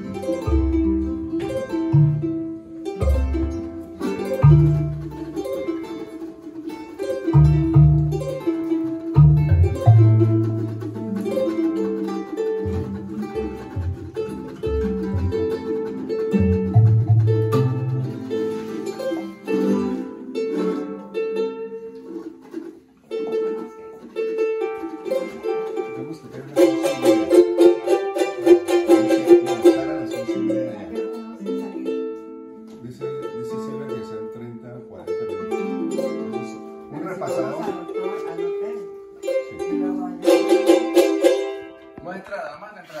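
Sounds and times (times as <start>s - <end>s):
small guitars strummed: 0.0s - 43.0s.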